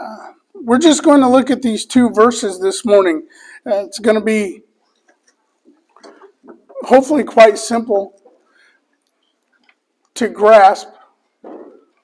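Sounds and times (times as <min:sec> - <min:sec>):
man speaking: 0:00.0 - 0:04.7, 0:06.7 - 0:08.2, 0:10.2 - 0:11.1.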